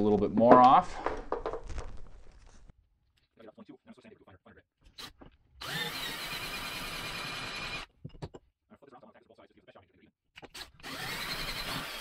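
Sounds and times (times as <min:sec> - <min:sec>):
tools knocking and clicking: 0:08.0 - 0:08.5.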